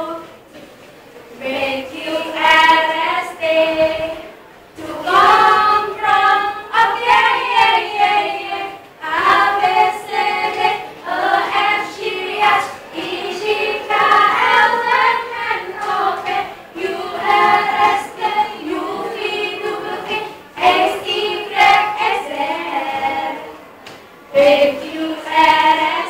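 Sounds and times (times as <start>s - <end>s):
girls singing together: 0.0s - 26.0s.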